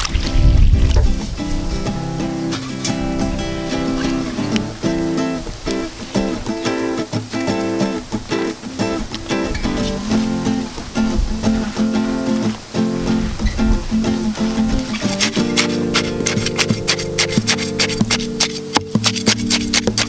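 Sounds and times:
acoustic guitar picked and strummed: 0.0 - 20.0.

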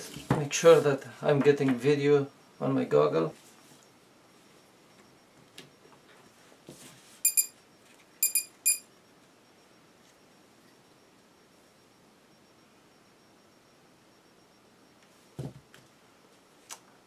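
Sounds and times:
short high electronic beeps: 7.2 - 7.6, 8.2 - 8.9.

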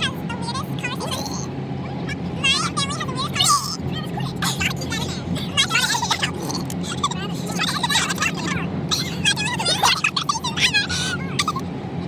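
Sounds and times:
car cabin hum: 0.0 - 12.0
girl laughing and squealing: 4.3 - 11.6.

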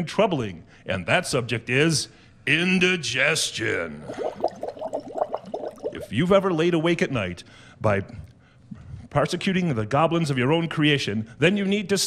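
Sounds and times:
liquid gurgling and bubbling: 3.9 - 6.2.

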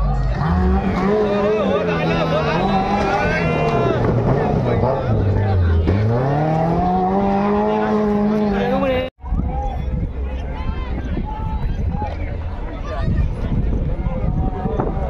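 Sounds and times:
onlookers shouting: 0.0 - 15.0
engine revving hard: 0.3 - 8.8.

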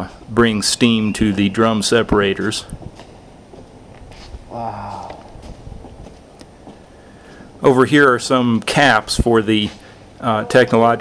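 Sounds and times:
footsteps on hard floor: 2.8 - 7.5.

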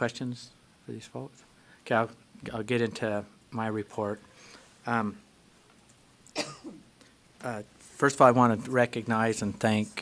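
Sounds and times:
man clearing throat: 6.4 - 6.9
man coughing: 6.4 - 6.9.

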